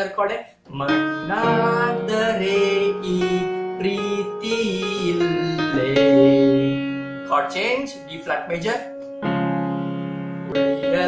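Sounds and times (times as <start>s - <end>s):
electronic keyboard melody: 0.8s - 11.0s
sustained keyboard chord: 0.8s - 11.0s.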